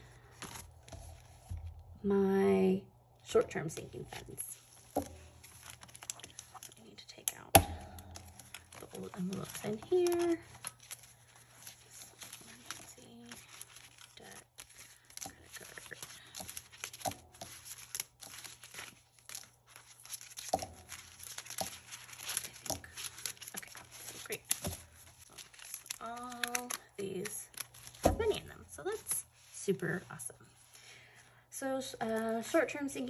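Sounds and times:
plastic envelopes crinkling: 0:00.0 - 0:01.8, 0:03.6 - 0:33.0.

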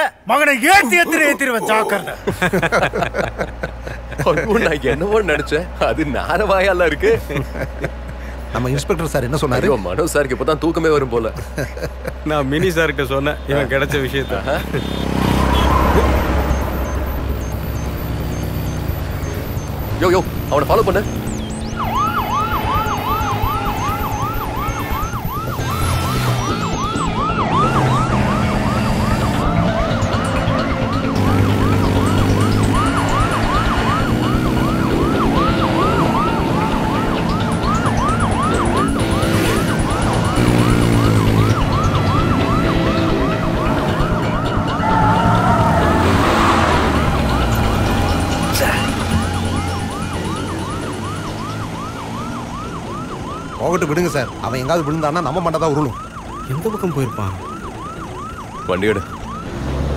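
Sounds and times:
police siren yelping: 0:14.5 - 0:59.9.

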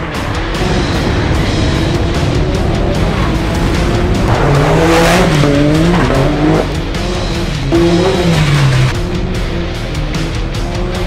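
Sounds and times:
engine revving: 0:00.0 - 0:11.0
music: 0:00.0 - 0:11.0.

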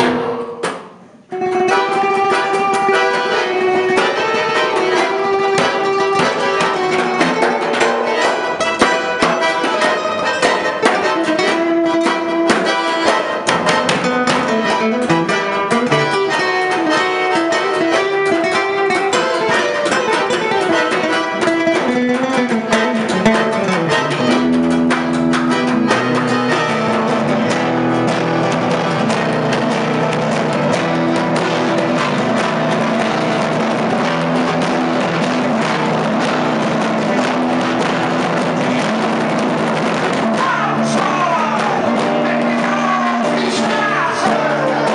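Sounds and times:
light percussion: 0:00.0 - 0:43.5
accordion: 0:00.0 - 0:44.9
acoustic guitar plucked runs: 0:00.0 - 0:44.9.

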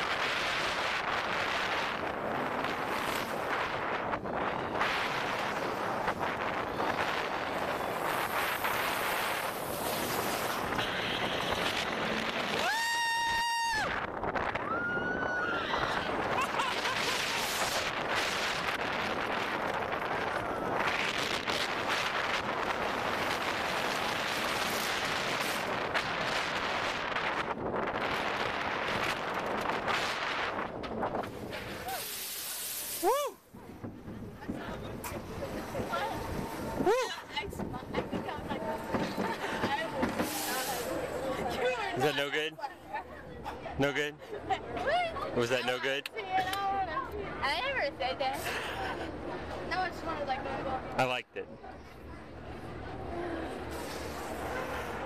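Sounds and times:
roller coaster wind and train rush: 0:00.0 - 0:55.0.

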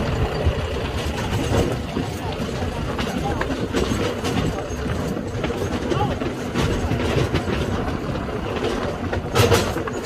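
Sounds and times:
tractor engine running: 0:00.0 - 0:10.0.

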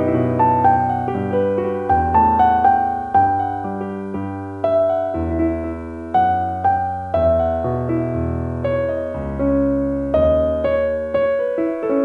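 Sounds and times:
slow piano music: 0:00.0 - 0:12.0.

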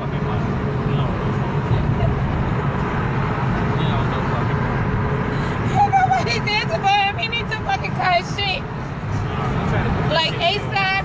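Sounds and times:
road and engine rumble in car: 0:00.0 - 0:11.0.

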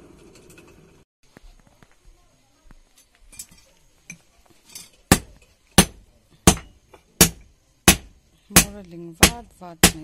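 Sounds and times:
hammer striking iron on anvil: 0:05.1 - 0:10.0.

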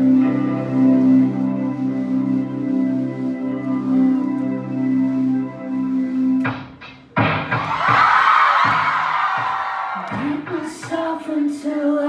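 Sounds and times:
keyboard drone: 0:00.0 - 0:07.5
live band with drums and guitars: 0:06.4 - 0:11.1
crowd cheering and whooping: 0:07.5 - 0:10.5.

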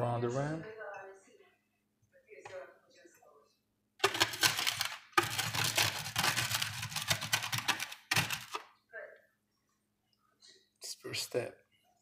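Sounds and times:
salt grinding against glass rim: 0:04.0 - 0:08.5.

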